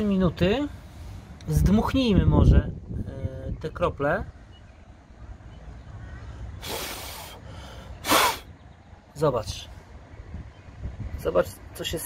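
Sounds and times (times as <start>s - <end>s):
breath blowing puff: 6.6s - 7.4s, 8.0s - 8.5s.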